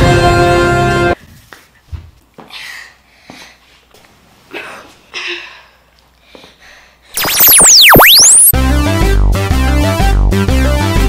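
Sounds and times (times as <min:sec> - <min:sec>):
electronic whoosh: 0:07.2 - 0:08.6.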